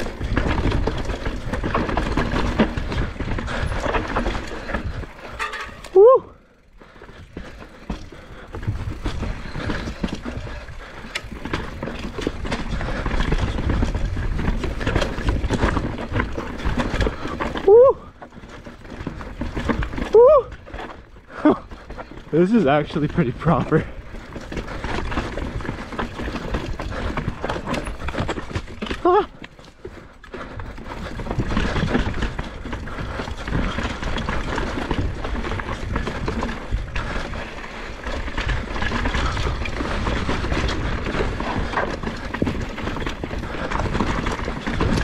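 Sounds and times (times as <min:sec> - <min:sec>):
bike chain and frame rattling: 0:00.0 - 0:45.0
bike tyres rumbling over dirt: 0:00.0 - 0:45.0.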